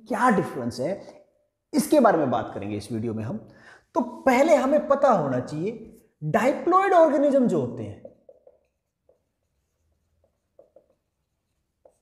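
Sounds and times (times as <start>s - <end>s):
marker writing on whiteboard: 8.0s - 12.0s.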